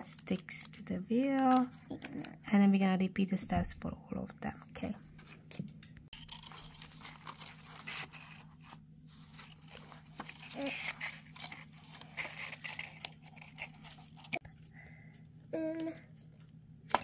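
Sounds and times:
card and paper rustles and taps: 0:00.0 - 0:02.4, 0:05.2 - 0:14.4, 0:15.7 - 0:17.0.

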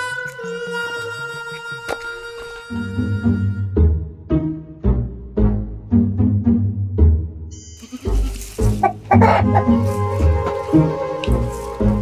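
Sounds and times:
background music: 0:00.0 - 0:12.0
rooster clucking: 0:08.2 - 0:10.5.

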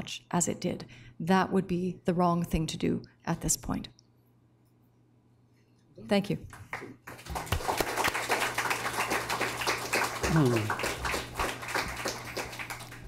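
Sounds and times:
audience applauding: 0:06.5 - 0:13.0.

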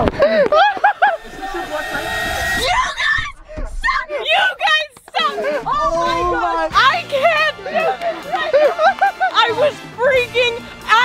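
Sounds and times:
voices: 0:00.0 - 0:11.0
horn-like blast: 0:00.6 - 0:03.5.

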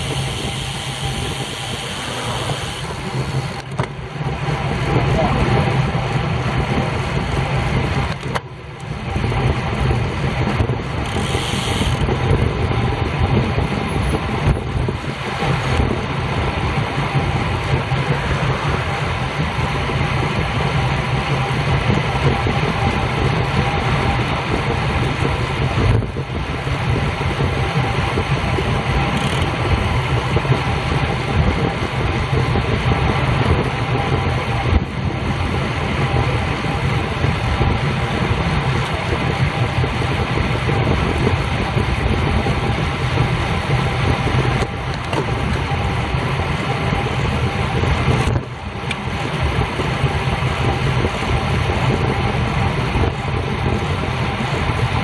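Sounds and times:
bicycle road noise: 0:00.0 - 0:55.0
wind rush on microphone: 0:00.0 - 0:55.0.

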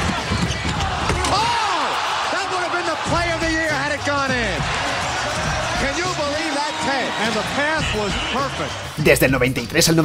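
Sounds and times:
sneakers squeaking on hardwood: 0:00.0 - 0:01.3
crowd noise: 0:00.0 - 0:09.6.

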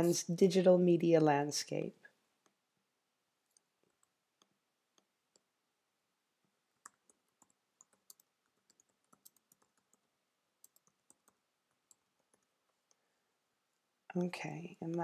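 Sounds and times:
faint keyboard typing: 0:03.4 - 0:05.6, 0:06.6 - 0:13.1.

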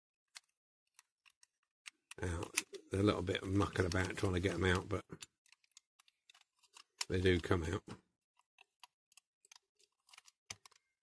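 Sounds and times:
small clicks of toy car parts: 0:08.5 - 0:11.0.

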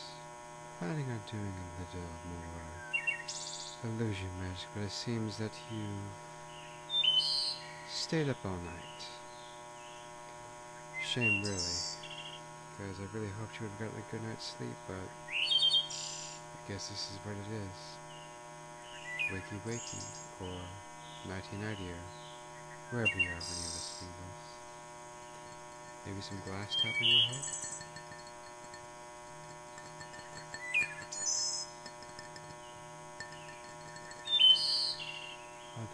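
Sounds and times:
faint steady hum: 0:00.0 - 0:35.9
thin electrical buzz: 0:00.0 - 0:35.9
person speaking: 0:00.8 - 0:02.8, 0:12.8 - 0:15.1, 0:19.3 - 0:22.1, 0:22.9 - 0:24.7, 0:25.3 - 0:32.6
short high bird chirp: 0:26.6 - 0:27.8, 0:34.2 - 0:35.8.

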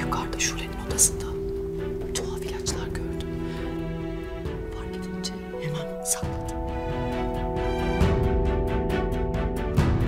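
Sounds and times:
woman speaking: 0:00.0 - 0:03.4, 0:04.5 - 0:06.7
music of steady held tones: 0:00.0 - 0:10.0.

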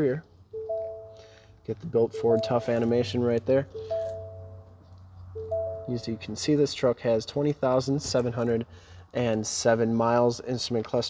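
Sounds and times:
two-tone dashboard warning chime: 0:00.5 - 0:01.4, 0:02.0 - 0:04.7, 0:05.4 - 0:06.3.

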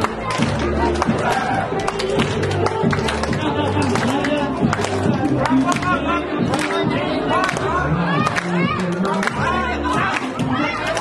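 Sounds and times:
crowd clapping along: 0:00.0 - 0:11.0
music playing: 0:00.0 - 0:11.0.

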